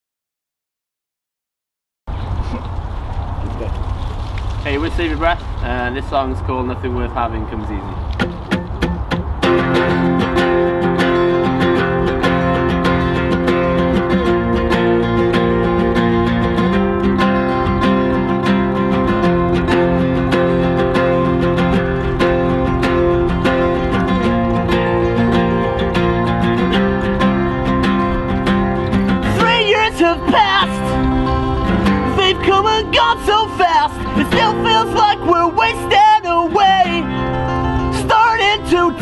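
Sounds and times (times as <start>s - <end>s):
acoustic guitars strumming chords: 8.0s - 39.0s.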